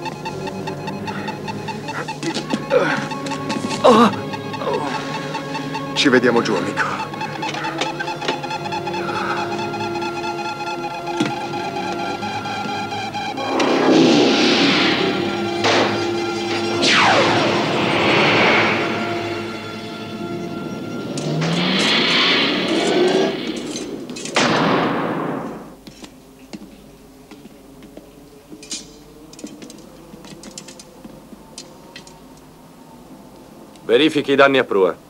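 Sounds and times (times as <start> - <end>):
held music notes: 0.0 - 24.4
loud whooshing sound effects: 13.4 - 20.0.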